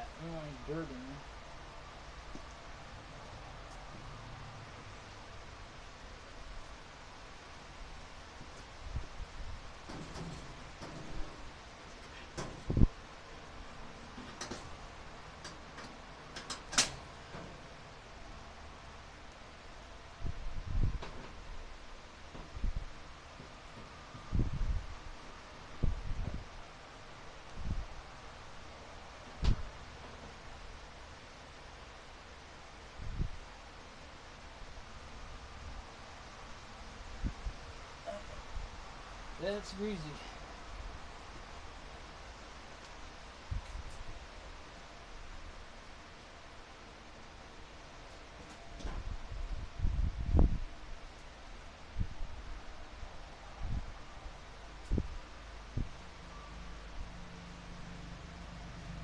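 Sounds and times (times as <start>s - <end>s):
steady hiss: 0.0s - 59.0s.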